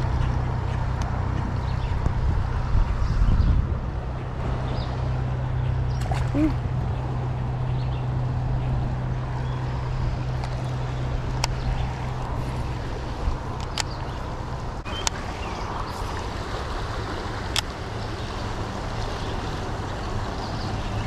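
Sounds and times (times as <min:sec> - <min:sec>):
wind on microphone: 0:00.0 - 0:19.8
creek running over rocks: 0:09.2 - 0:21.0.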